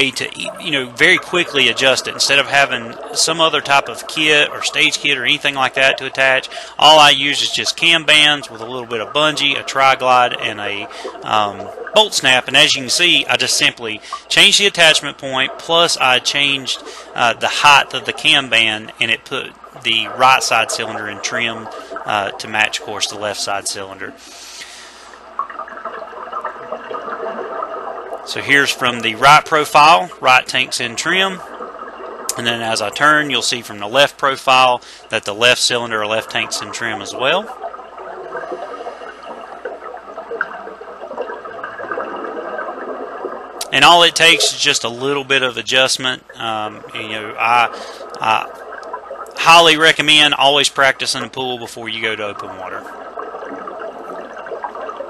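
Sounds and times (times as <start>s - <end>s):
underwater regulator bubbles: 0.0s - 55.0s
underwater watery hiss: 24.2s - 25.2s.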